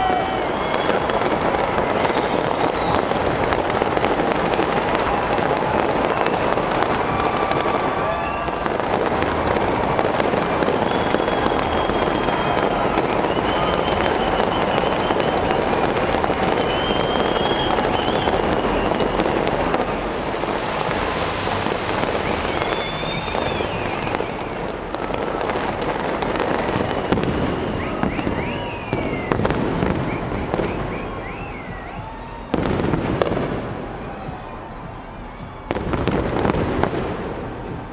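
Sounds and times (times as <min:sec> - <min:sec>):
fireworks crackling and popping: 0:00.0 - 0:37.9
fireworks whistling: 0:00.0 - 0:37.9
loud firework burst: 0:00.0 - 0:37.9.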